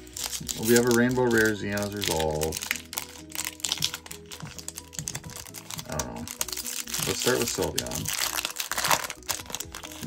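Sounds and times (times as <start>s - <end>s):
foil wrapper crinkling: 0.0s - 10.0s
quiet background music: 0.0s - 10.0s.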